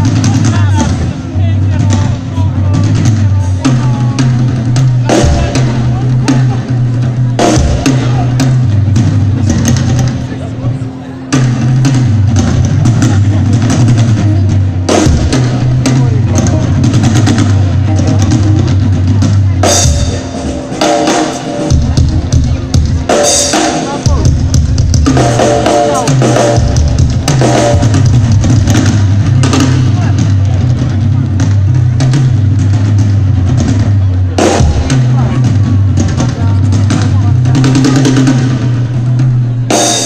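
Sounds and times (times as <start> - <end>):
drum kit hits: 0.0 - 10.4, 11.3 - 40.0
blues band playing: 0.0 - 40.0
electric bass line: 0.0 - 40.0.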